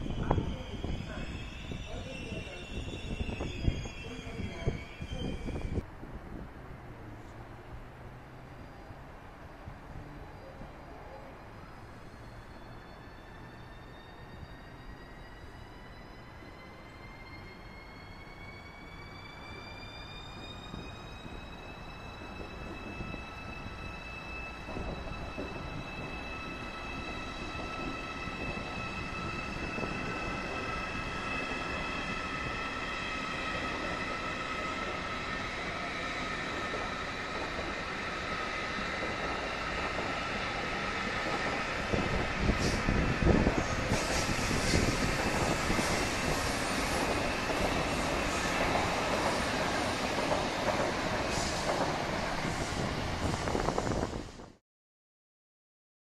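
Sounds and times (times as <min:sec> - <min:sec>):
electric train whine: 0:00.0 - 0:05.9, 0:07.6 - 0:54.4
wheels rushing on rails: 0:00.0 - 0:54.6
train rolling noise: 0:08.7 - 0:54.6.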